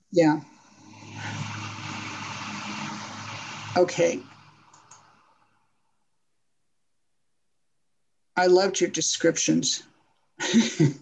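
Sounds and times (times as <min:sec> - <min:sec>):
low mechanical hum: 0:00.0 - 0:05.7
broad hiss: 0:00.4 - 0:05.6.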